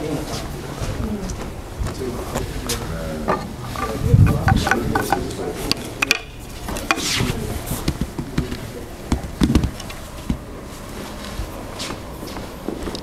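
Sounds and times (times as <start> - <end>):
light clicks and knocks: 3.3 - 7.1
dull thuds: 6.1 - 10.5.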